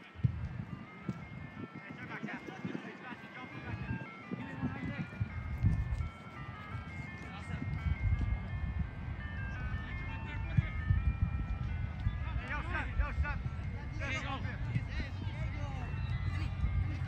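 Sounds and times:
simple electronic melody: 0.0 - 17.0.

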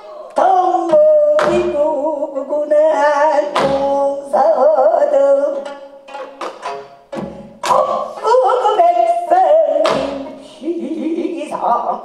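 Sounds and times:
plucked zither strings: 5.2 - 10.6
women singing wavering line: 7.6 - 10.8.

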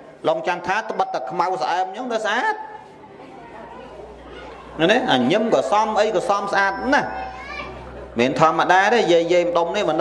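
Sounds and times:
man preaching into a microphone: 0.2 - 2.8, 4.8 - 7.2, 8.2 - 10.0.

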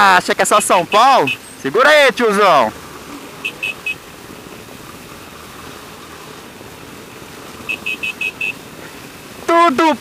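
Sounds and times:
motorcycle engine running: 2.7 - 9.5
short electronic beeps: 3.4 - 4.0, 7.7 - 8.6.

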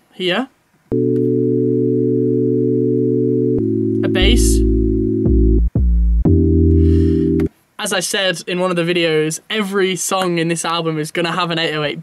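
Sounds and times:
synth pad chords: 0.9 - 7.5.

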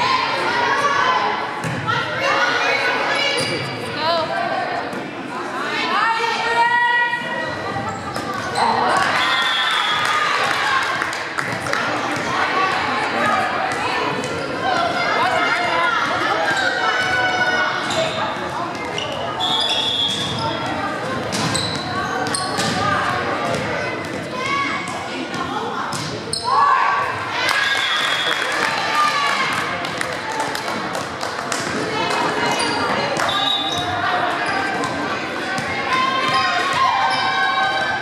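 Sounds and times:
people shouting in a hall: 0.0 - 3.4, 26.4 - 29.7, 31.9 - 38.0.

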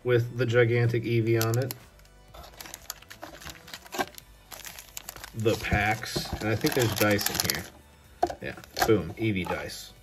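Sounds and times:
foil packs and cards rustling: 1.2 - 9.7.

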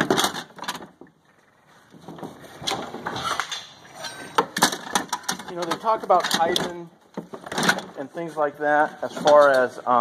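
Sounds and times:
tools rustling and clattering in bin: 0.0 - 1.0, 1.9 - 9.8.

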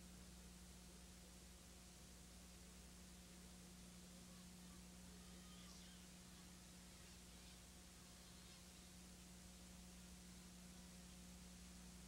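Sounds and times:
faint steady hum: 0.0 - 12.0
recording hiss: 0.0 - 12.0.

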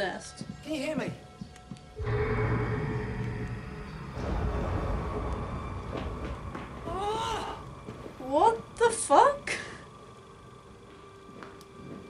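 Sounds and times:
low rumble with droning tone: 2.0 - 10.9.

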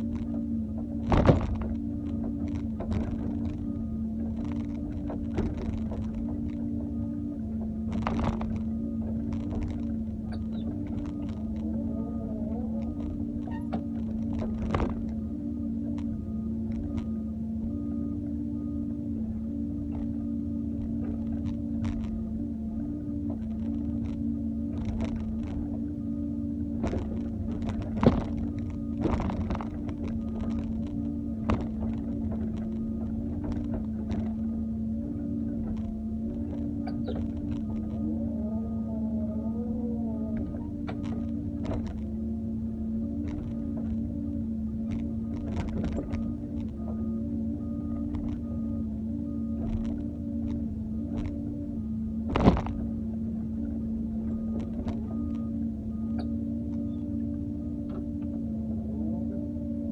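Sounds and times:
excavator diesel engine running: 0.0 - 59.9
wavering whines: 0.0 - 59.9.

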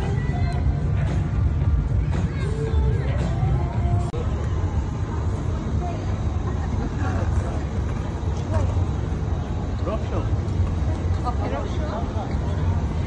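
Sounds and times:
faint voices: 0.0 - 13.0
low urban rumble: 0.0 - 13.0.

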